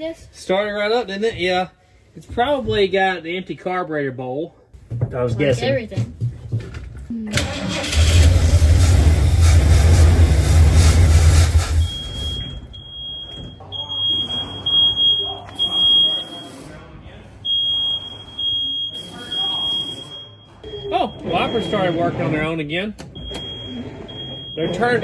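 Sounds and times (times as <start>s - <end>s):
car engine running loudly: 7.5s - 12.0s.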